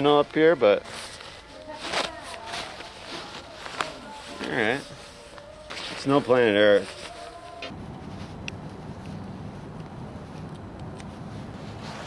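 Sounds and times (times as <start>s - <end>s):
low street rumble: 0.0s - 12.0s.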